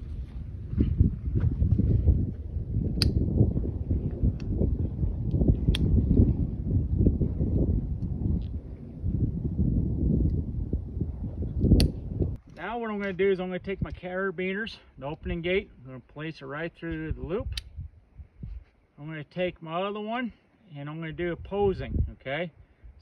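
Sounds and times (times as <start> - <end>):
wind rumbling on microphone: 0.0 - 18.8, 21.0 - 23.0
carabiner metal clicks: 11.6 - 12.0, 17.5 - 17.7.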